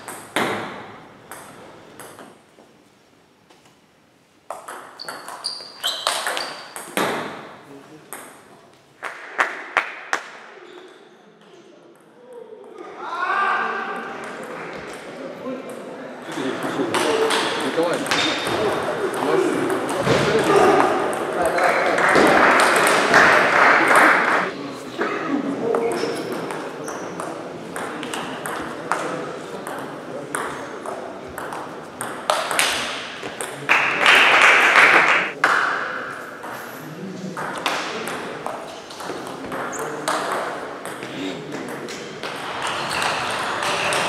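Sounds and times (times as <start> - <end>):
voices in a hall: 5.5 - 44.0.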